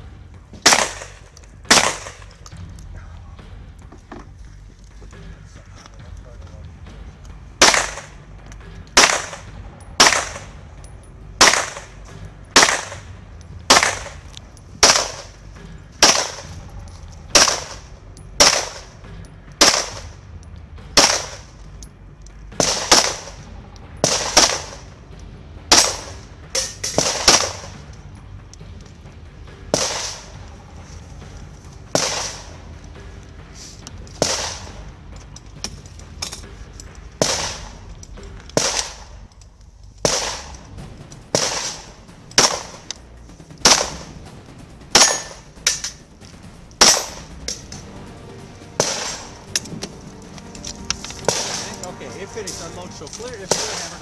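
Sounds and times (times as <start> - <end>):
gunshots with ringing echo: 0.6 - 2.5, 7.6 - 20.3, 20.9 - 21.6, 22.5 - 25.0, 25.7 - 27.9, 29.7 - 30.7, 31.9 - 32.7, 34.2 - 35.0, 37.2 - 39.3, 40.0 - 43.0, 43.6 - 44.2, 44.9 - 46.0, 46.7 - 54.0.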